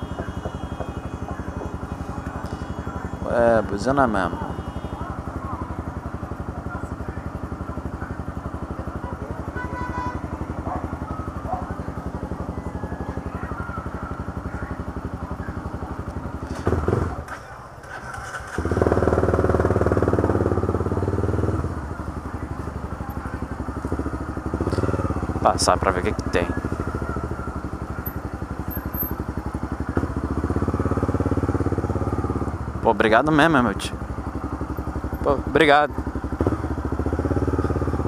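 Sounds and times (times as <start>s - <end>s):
motorcycle engine idling: 0.0s - 38.0s.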